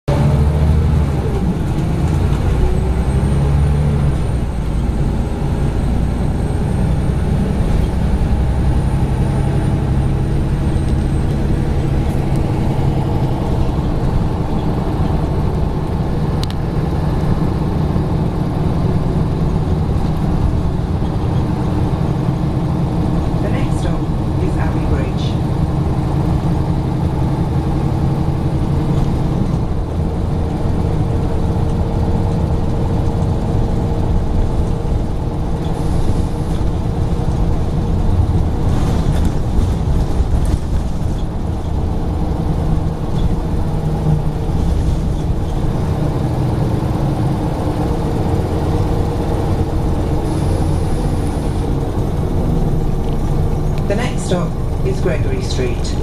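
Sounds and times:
bus diesel engine droning: 0:00.0 - 0:56.0
road and cabin noise: 0:00.0 - 0:56.0.

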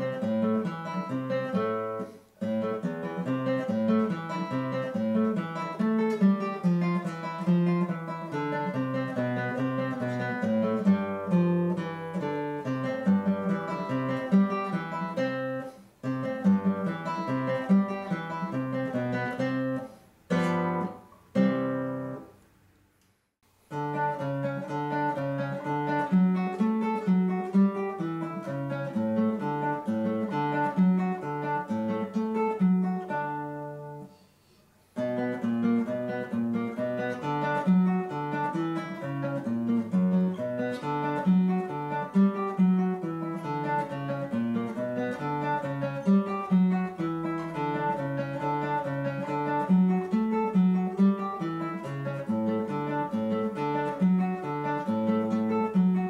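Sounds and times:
nylon-string guitar fingerpicking: 0:00.0 - 0:22.4, 0:23.7 - 0:56.0.

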